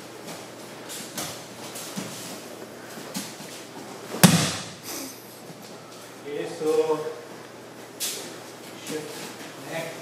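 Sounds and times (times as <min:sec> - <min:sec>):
body thudding onto a mat: 0:04.2 - 0:04.8.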